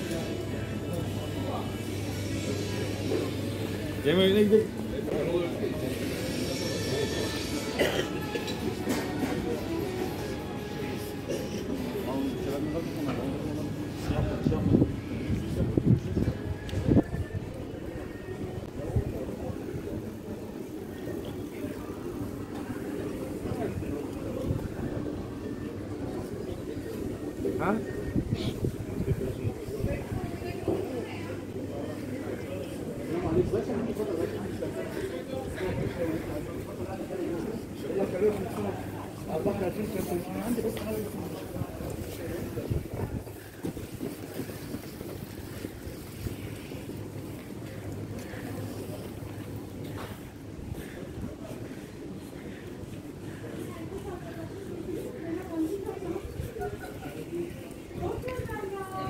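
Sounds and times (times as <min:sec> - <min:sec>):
indistinct voices of passers-by: 0:00.0 - 0:59.0
wind buffeting microphone: 0:41.5 - 0:46.6.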